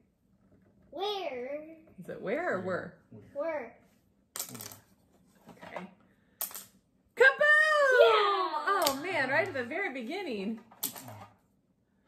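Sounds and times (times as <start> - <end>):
woman shouting: 7.2 - 8.8.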